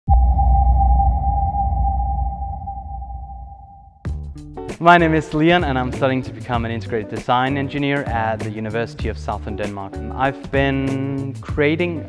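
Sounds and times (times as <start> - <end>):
ringing electronic tone: 0.1 - 4.0
deep electronic hit: 0.1 - 4.4.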